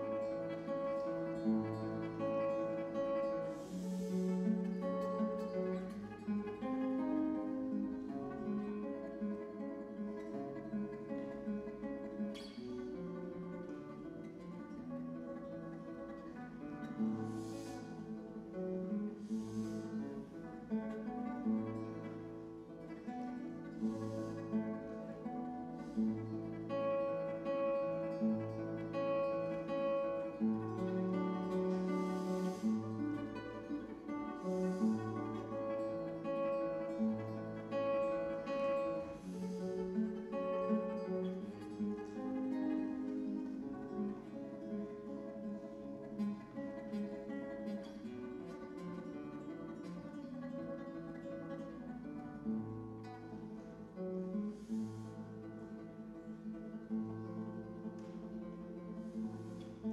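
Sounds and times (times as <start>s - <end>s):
fingerpicked classical guitar: 0.0s - 59.9s.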